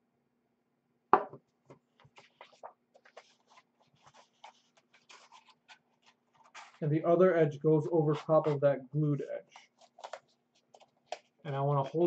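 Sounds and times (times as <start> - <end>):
paper rustling and crinkling: 2.0 - 6.9, 9.4 - 12.0.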